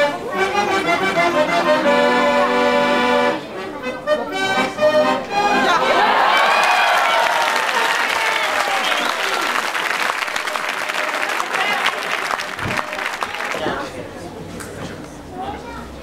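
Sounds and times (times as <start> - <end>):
audience applauding: 5.9 - 13.8.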